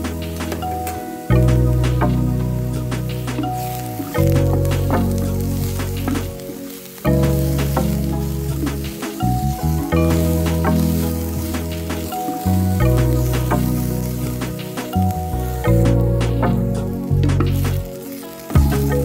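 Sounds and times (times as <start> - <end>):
background music: 0.0 - 19.0
onions sizzling in a pan: 0.0 - 19.0.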